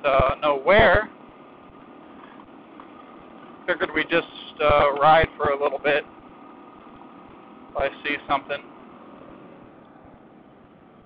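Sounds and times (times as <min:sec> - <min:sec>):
faint muffled motorcycle engine: 0:00.0 - 0:11.0.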